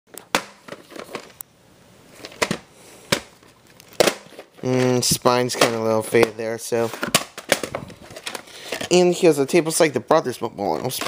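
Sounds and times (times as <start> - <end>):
handling clicks and knocks: 2.3 - 9.1.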